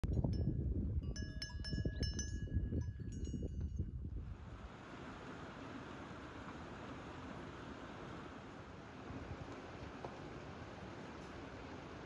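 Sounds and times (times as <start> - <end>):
animal bells clinking: 0.1 - 3.8.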